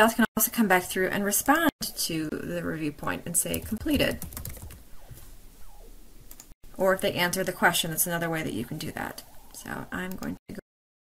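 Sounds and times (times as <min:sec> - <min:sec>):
computer keyboard keys clicking: 0:03.5 - 0:04.8.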